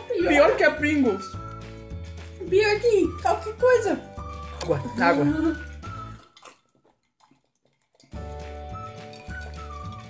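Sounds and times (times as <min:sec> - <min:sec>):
background music: 0:00.0 - 0:06.6, 0:08.1 - 0:10.0
people gulping water: 0:04.2 - 0:10.0.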